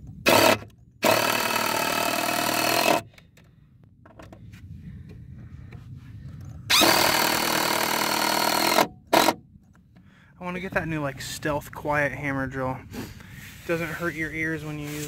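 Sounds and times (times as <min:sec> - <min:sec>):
impact driver driving screws: 0:00.2 - 0:03.1, 0:06.7 - 0:09.4.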